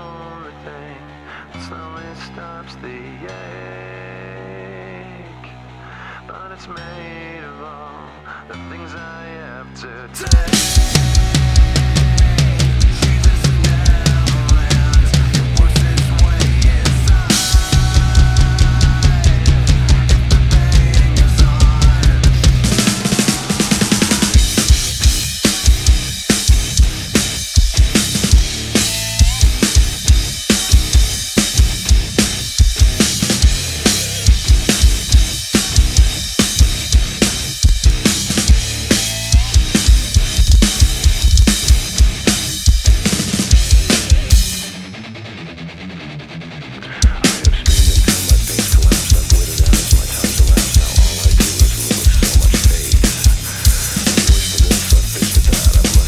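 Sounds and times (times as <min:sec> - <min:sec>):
metal song backing: 0:00.0 - 0:56.0
acoustic drum kit played hard: 0:10.2 - 0:44.8, 0:47.0 - 0:56.0.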